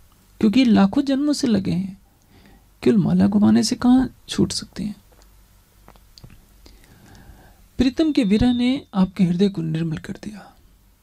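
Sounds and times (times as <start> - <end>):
soft breathy hiss: 0.0 - 11.0.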